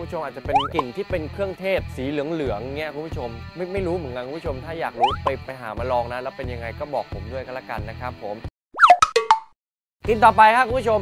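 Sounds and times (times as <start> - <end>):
cartoon pops with sliding pitch: 0.5 - 0.9, 5.0 - 5.3, 8.8 - 9.5.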